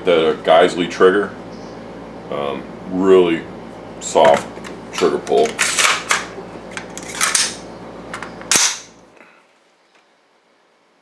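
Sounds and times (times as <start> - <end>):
magazine seating snap: 8.5 - 8.9.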